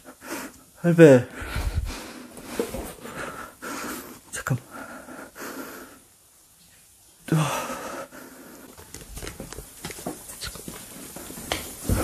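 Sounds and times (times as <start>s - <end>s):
footsteps: 1.4s - 3.4s, 8.6s - 12.0s.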